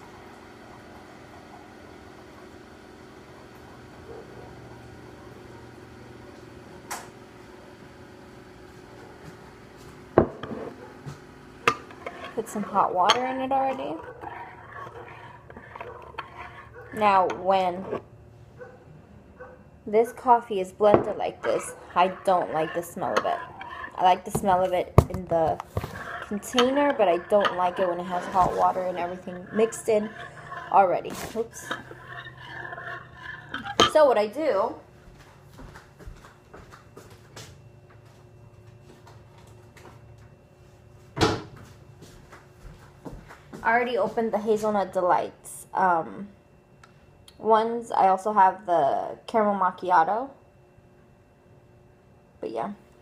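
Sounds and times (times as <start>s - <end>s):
low steady hum: 0.0s - 53.0s
spoon stirring coffee in mug: 11.7s - 18.0s, 21.0s - 34.1s.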